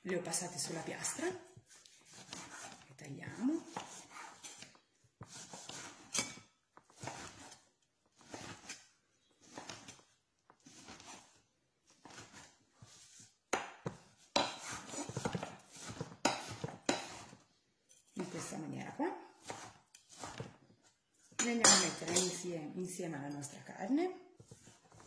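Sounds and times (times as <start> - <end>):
knife chopping on board: 13.5 - 17.4, 19.4 - 20.4.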